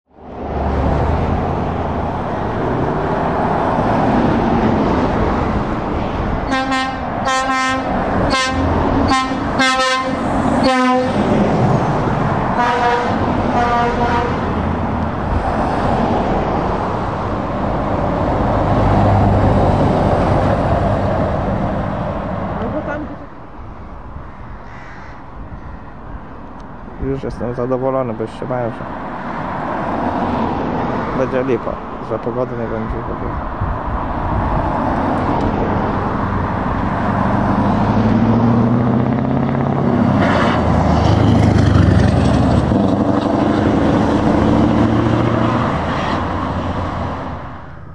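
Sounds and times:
traffic rumble: 0:00.1 - 0:47.9
truck air horn blasts: 0:06.5 - 0:11.2, 0:12.6 - 0:14.5.

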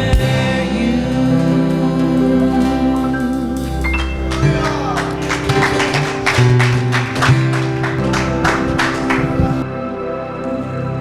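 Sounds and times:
strummed acoustic guitars: 0:00.0 - 0:09.6
bass: 0:00.0 - 0:11.0
keyboard: 0:00.0 - 0:11.0.

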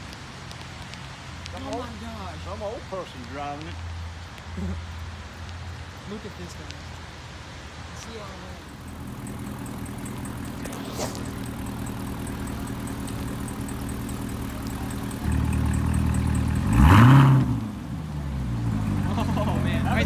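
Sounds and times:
car engine idling: 0:03.9 - 0:20.0
engine rev: 0:08.8 - 0:20.0.

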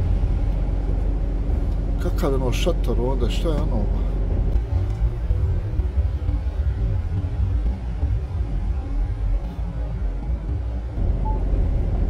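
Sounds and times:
truck engine and road noise: 0:00.0 - 0:12.0.

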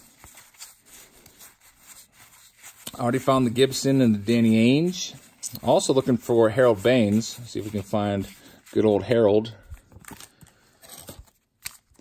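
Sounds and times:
paper and card rustling: 0:00.0 - 0:12.0.

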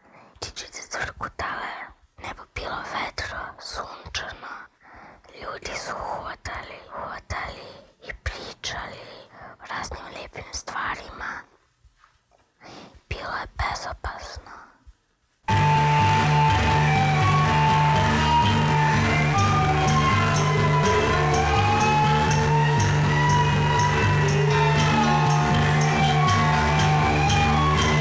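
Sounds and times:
woman whispering: 0:00.4 - 0:11.6, 0:13.1 - 0:14.8.

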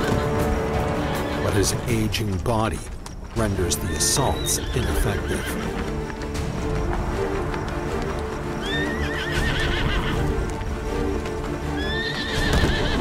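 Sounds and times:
horses neighing: 0:00.0 - 0:10.6, 0:11.6 - 0:13.0
background music with held notes: 0:00.0 - 0:13.0.

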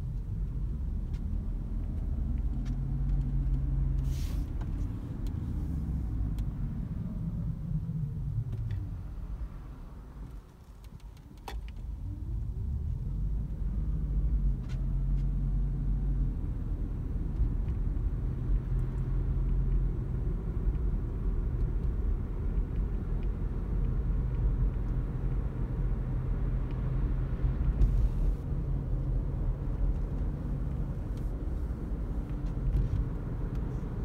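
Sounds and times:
car drivetrain and road rumble: 0:00.0 - 0:34.0.

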